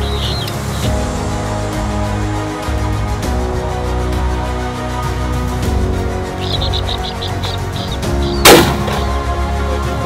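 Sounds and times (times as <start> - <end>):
high chirping bird calls: 0.0 - 0.9, 6.3 - 8.5
background music: 0.0 - 10.0
shotgun shot with echo: 8.4 - 9.1.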